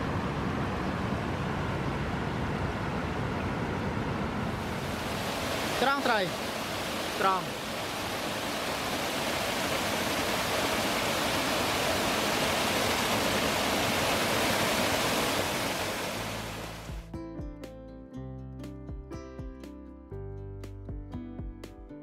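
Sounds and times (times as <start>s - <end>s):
waterfall rushing onto rocks: 4.6s - 17.0s
music with plucked notes: 16.9s - 22.0s.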